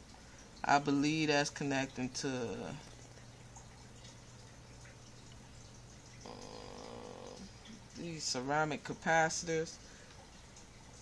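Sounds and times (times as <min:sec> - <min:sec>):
low steady hum: 0:00.0 - 0:11.0
multimeter continuity buzz: 0:02.2 - 0:09.9.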